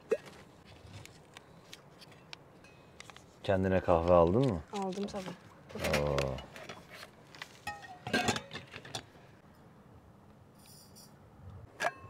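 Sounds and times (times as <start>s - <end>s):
metal cups clinking: 7.6s - 9.2s.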